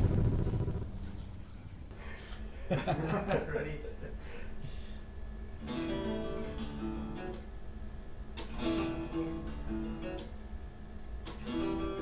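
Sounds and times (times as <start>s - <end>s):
deep rumbling thump: 0.0s - 1.5s
faint low hum: 0.0s - 12.0s.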